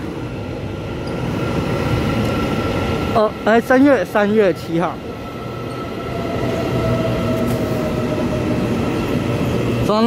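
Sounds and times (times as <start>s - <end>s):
train rumble: 0.0s - 10.0s.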